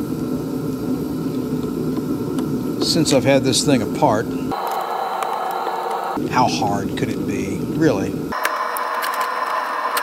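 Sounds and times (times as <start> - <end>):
heater whirring: 0.0 - 10.0.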